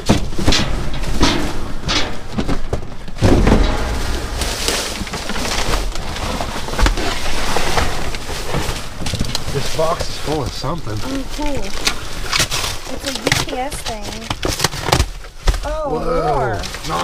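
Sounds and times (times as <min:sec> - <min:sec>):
heavy thump: 0:00.0 - 0:07.0
cardboard boxes scraping: 0:00.0 - 0:15.6
plastic bags rustling: 0:00.0 - 0:15.7.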